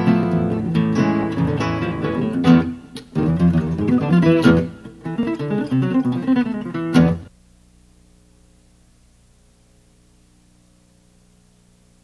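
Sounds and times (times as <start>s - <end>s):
acoustic guitar playing: 0.0s - 7.3s
faint steady hum: 0.0s - 12.0s.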